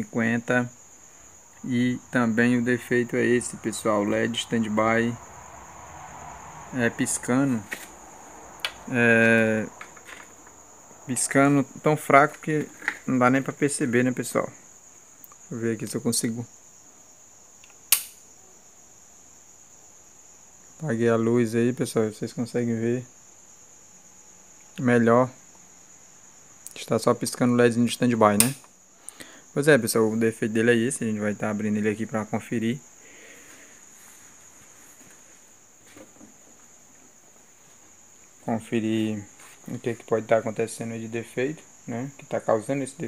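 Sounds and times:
crickets trilling: 0.0s - 43.0s
high-pitched whine: 1.6s - 10.3s
light switch click: 17.6s - 18.2s, 28.4s - 28.7s.

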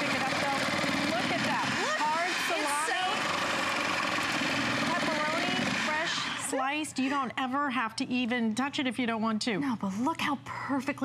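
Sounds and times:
slicer motor running: 0.0s - 6.5s.

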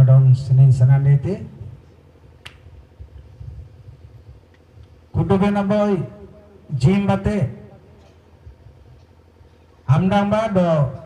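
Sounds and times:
low steady hum and rumble: 0.0s - 11.0s
sharp click: 2.4s - 2.6s.

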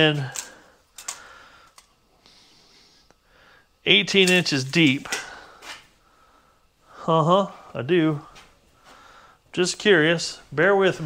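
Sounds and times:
man speaking: 0.0s - 0.5s, 3.8s - 5.4s, 6.9s - 8.4s, 9.5s - 11.0s.

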